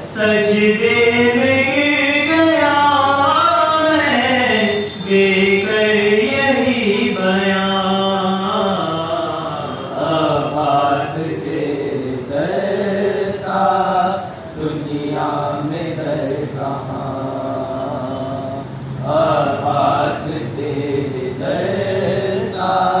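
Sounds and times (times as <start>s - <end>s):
man singing unaccompanied: 0.0s - 23.0s.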